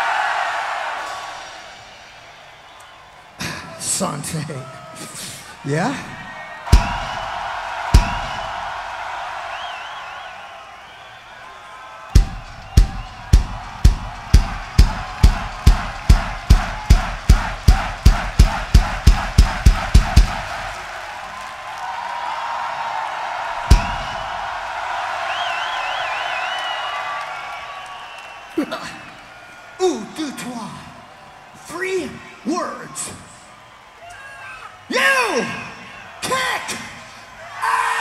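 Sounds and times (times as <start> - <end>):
crowd cheering and whistling: 0.0 - 38.0
heavy drum strikes: 6.7 - 9.2, 12.2 - 21.0, 23.6 - 24.8.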